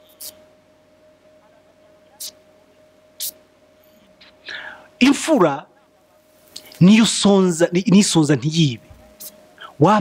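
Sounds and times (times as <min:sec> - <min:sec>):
faint steady hum: 0:00.0 - 0:10.0
man breathing: 0:04.4 - 0:05.0.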